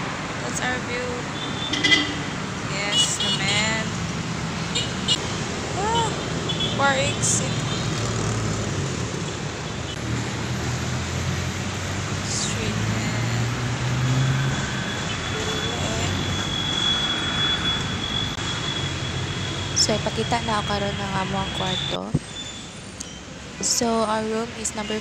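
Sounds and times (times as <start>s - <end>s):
street traffic hum: 0.0s - 25.0s.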